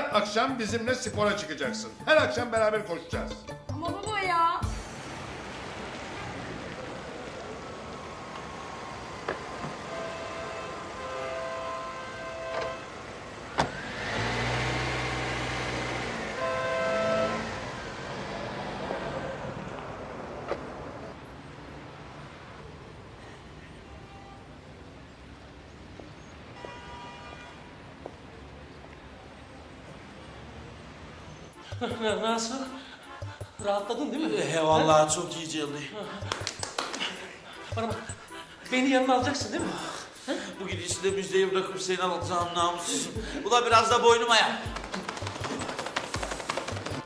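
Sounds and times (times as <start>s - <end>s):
car passing by: 4.8s - 11.1s, 12.5s - 23.6s
traffic on wet road: 4.8s - 23.9s.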